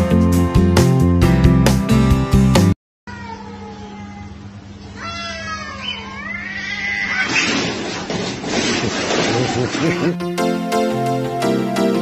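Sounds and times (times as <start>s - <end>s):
background music: 0.0s - 2.7s, 9.8s - 12.0s
cat meowing: 3.1s - 7.5s.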